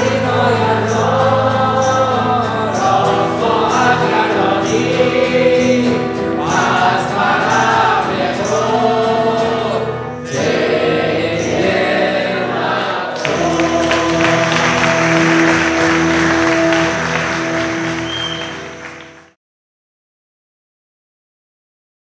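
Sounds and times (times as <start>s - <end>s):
voices singing worship song: 0.0s - 19.0s
acoustic guitar: 0.0s - 19.4s
stage piano: 0.0s - 19.4s.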